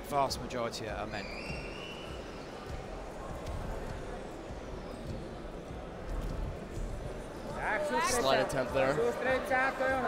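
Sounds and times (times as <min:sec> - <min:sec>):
indoor arena background noise: 0:00.0 - 0:10.0.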